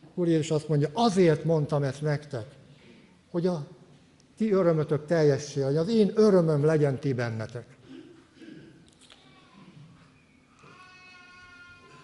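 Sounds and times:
faint high-pitched voice-like call: 9.1s - 12.0s.

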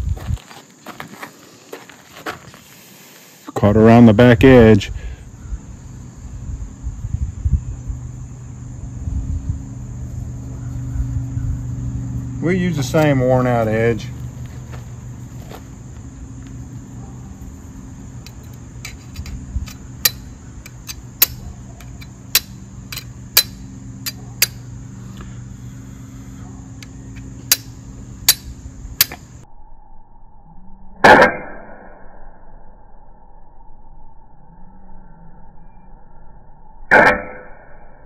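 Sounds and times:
steady background hum: 0.0s - 29.5s
stone striking steel clicks: 18.2s - 24.6s.

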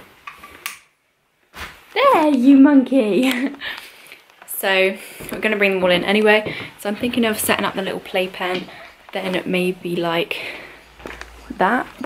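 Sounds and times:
faint clicks and rustles: 3.2s - 12.0s
person speaking: 4.5s - 12.0s.

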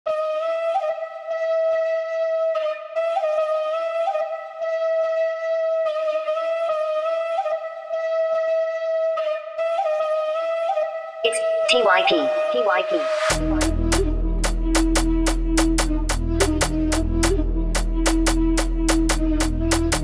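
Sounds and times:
solo flute melody: 0.1s - 20.0s.

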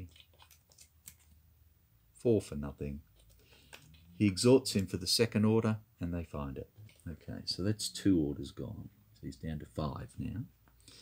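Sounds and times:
game cards clicking and scraping: 3.1s - 4.9s.

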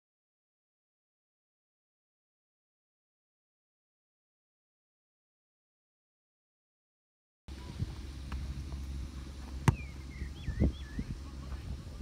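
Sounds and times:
wind rumble on microphone: 7.5s - 12.0s
bird whistling: 9.7s - 11.3s.

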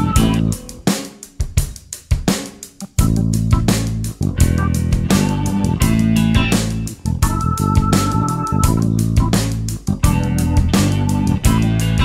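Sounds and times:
drum kit break: 0.0s - 12.0s
instrumental funk backing track: 0.0s - 12.0s.

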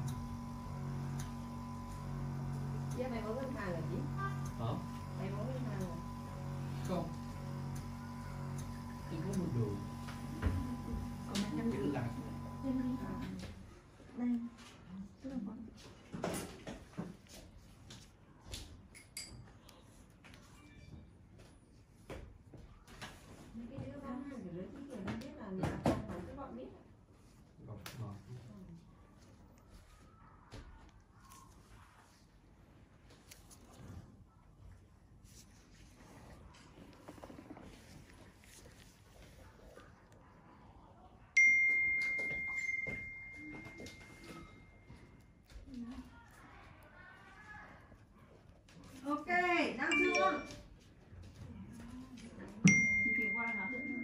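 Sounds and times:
faint clicking and handling noise: 26.4s - 49.6s
bell-like ding: 41.4s - 44.8s, 52.7s - 54.0s.

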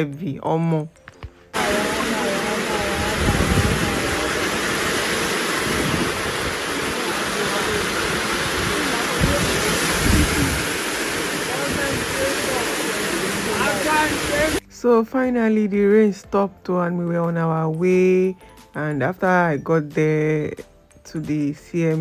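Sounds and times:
heavy rain pouring: 1.6s - 14.6s.

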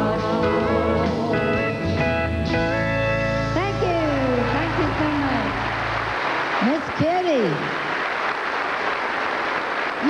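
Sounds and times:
large audience applauding: 4.2s - 10.0s.

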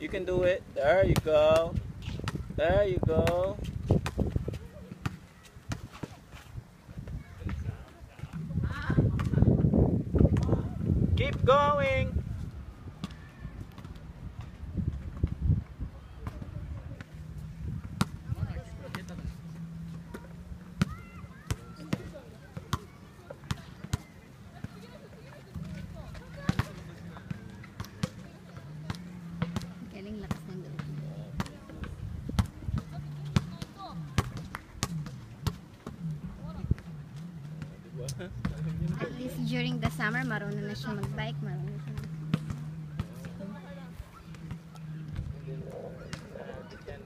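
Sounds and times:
faint voices: 12.6s - 47.0s
basketballs bouncing on hard court: 20.1s - 36.1s.

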